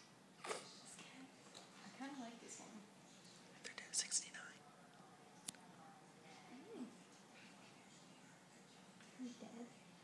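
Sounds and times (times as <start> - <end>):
faint room noise: 0.0 - 10.0
person whispering: 3.6 - 4.6.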